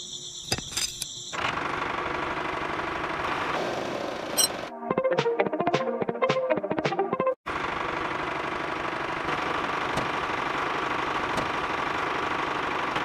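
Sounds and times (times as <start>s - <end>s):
background music: 4.7s - 7.4s.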